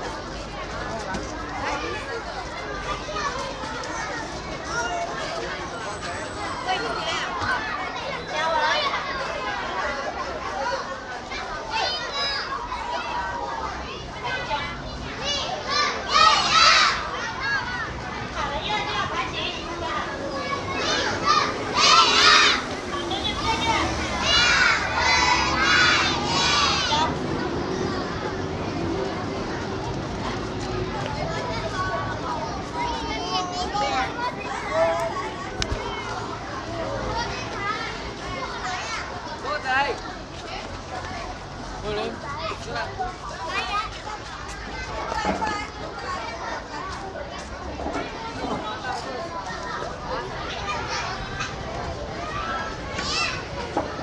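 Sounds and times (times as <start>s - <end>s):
children shouting: 0.0s - 54.0s.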